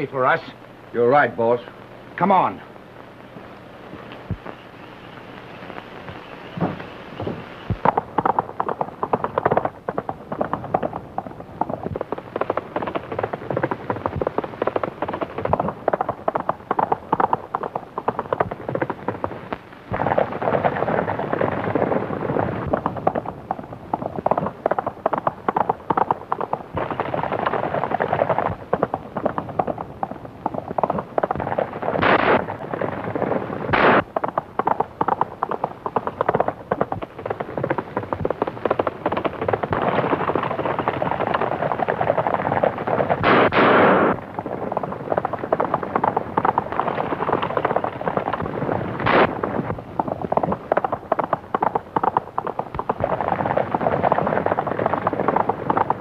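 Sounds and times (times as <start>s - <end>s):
horses galloping on dirt road: 3.9s - 56.0s
loud sharp cracks: 24.0s - 56.0s.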